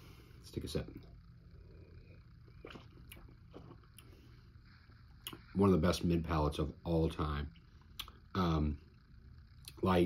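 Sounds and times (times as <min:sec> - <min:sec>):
mouth clicks and smacks: 0:05.2 - 0:05.4, 0:07.9 - 0:08.2.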